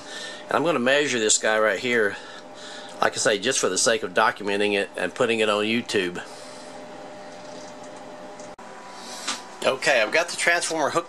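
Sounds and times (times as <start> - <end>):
faint steady hum of tones: 0.0 - 11.0.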